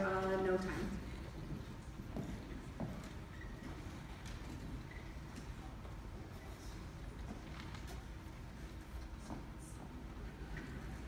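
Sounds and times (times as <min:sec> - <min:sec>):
concert hall background noise: 0:00.0 - 0:11.0
footsteps shuffling on stage risers: 0:00.0 - 0:11.0.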